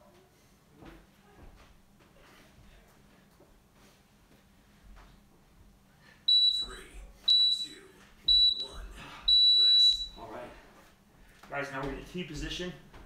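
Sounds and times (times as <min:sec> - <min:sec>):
interval timer beeping: 0:06.3 - 0:10.2.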